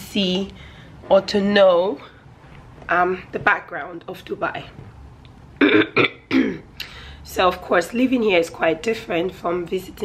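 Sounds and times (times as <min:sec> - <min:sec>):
woman clearing her throat: 0:05.6 - 0:06.7.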